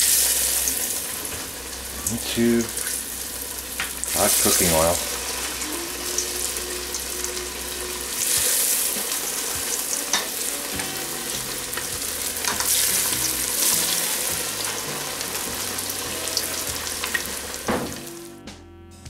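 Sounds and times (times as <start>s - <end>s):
fish deep-frying in oil: 0.0s - 18.2s.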